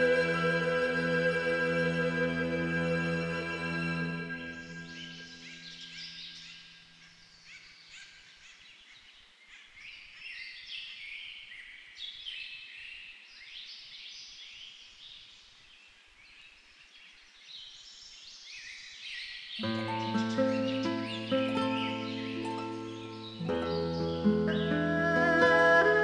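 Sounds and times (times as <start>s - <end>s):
small birds chirping and singing: 2.0s - 26.0s.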